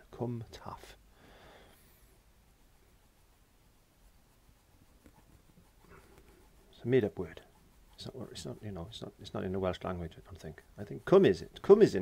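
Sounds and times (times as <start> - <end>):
brush strokes on canvas: 0.0 - 12.0.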